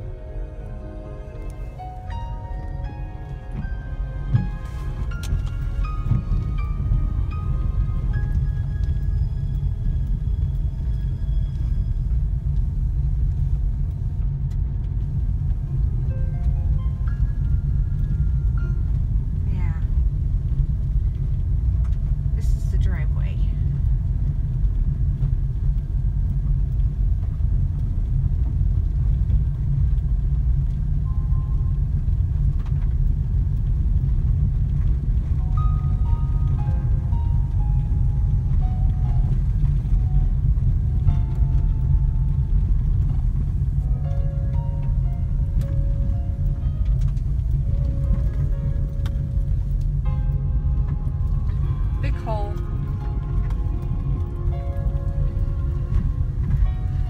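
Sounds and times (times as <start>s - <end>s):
faint notes: 0.0s - 14.1s, 15.0s - 23.9s, 34.7s - 57.0s
car cabin road rumble: 0.0s - 57.0s.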